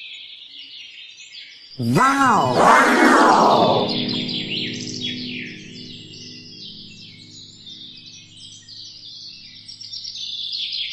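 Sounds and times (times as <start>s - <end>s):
held low musical note: 1.8s - 8.7s.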